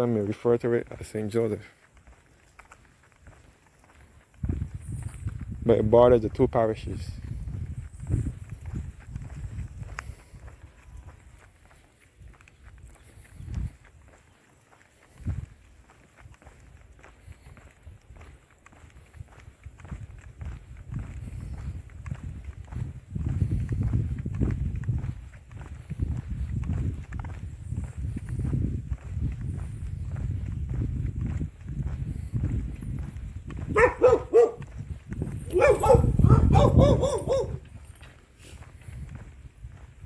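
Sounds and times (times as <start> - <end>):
footsteps on paved road: 0.0 - 40.0.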